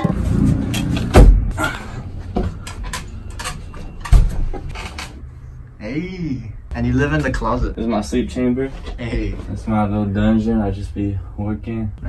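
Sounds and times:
heavy low thump: 1.1s - 1.6s.

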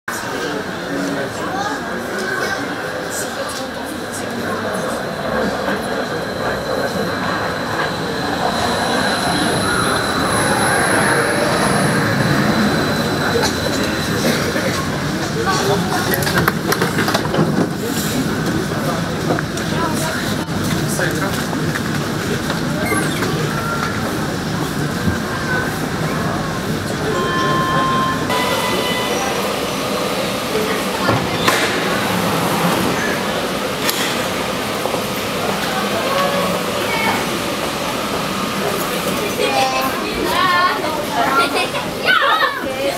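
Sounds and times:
crowd chatter on platform: 0.0s - 42.9s
train whining: 0.1s - 42.9s
electronic signal tone: 27.0s - 29.5s.

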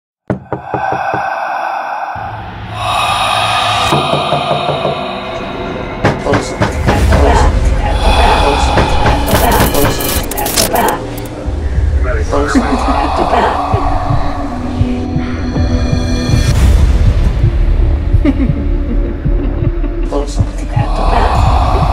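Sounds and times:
eerie sustained tone: 0.4s - 17.0s, 20.6s - 21.9s
low throbbing drone: 0.4s - 21.9s.

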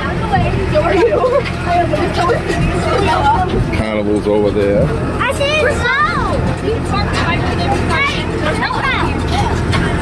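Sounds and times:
people talking: 0.0s - 10.0s
tractor engine running: 0.0s - 10.0s.

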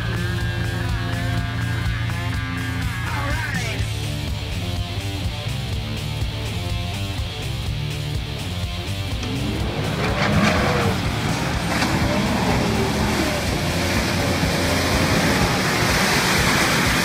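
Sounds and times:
music: 0.0s - 17.0s
engine revving: 6.0s - 17.0s
mud and water splashing: 9.2s - 17.0s.

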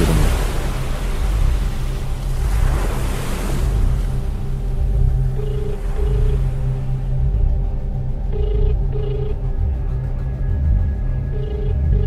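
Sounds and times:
deep low rumble: 0.0s - 12.0s.

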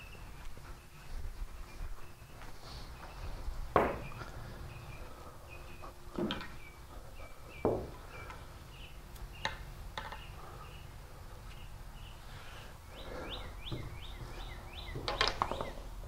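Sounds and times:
small birds chirping: 0.0s - 16.0s
billiard balls knocking: 3.7s - 4.2s.

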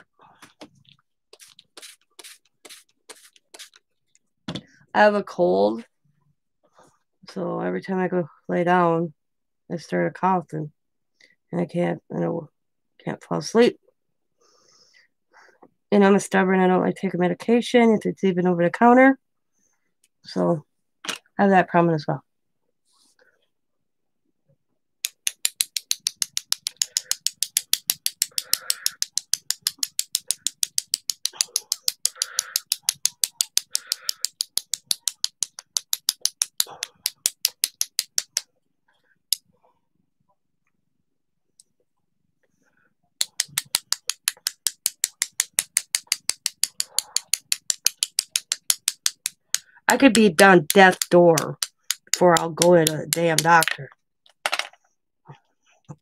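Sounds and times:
paintbrush handles clicking together: 25.0s - 38.4s, 43.2s - 53.8s.

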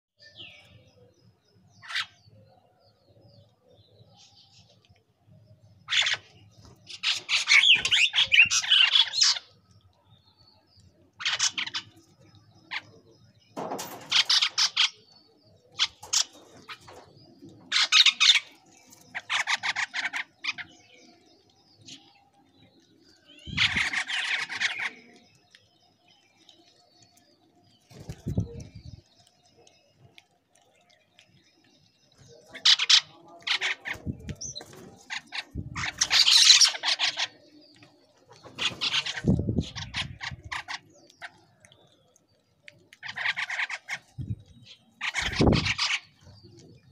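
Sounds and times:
mynas calling: 23.2s - 25.2s, 42.9s - 46.9s.

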